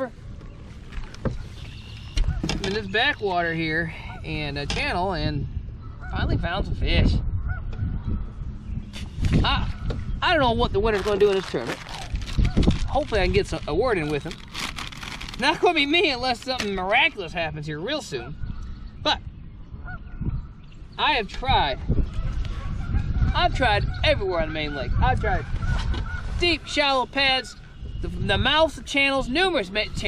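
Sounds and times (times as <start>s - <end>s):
wind rumble on microphone: 0.0s - 30.0s
honk-like bird calls: 22.1s - 28.0s.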